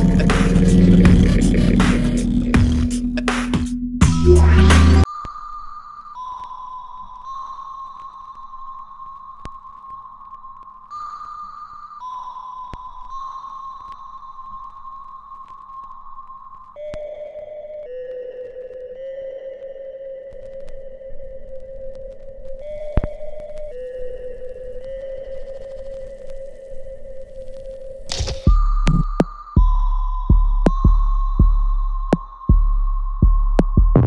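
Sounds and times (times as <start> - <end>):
deep heavy bass beats: 0.0 - 5.1, 28.5 - 34.0
held electronic tones: 4.0 - 5.4.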